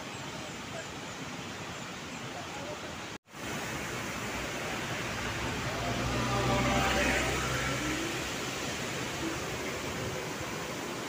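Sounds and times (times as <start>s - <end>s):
vehicle passing by: 4.6s - 9.9s.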